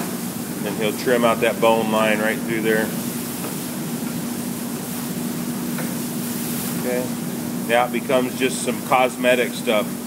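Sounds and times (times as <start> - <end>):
machinery humming: 0.0 - 10.0
steady hiss: 0.0 - 10.0.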